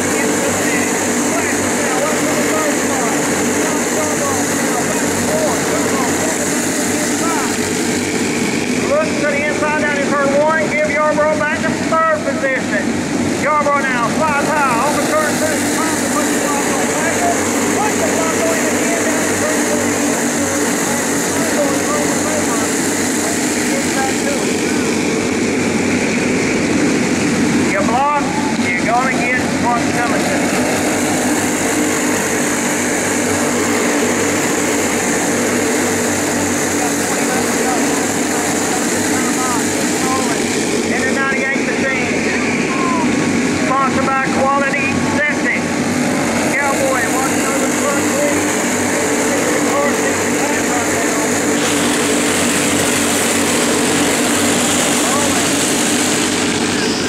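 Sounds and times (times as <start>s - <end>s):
go-kart engines racing: 0.0s - 10.1s, 13.9s - 57.0s.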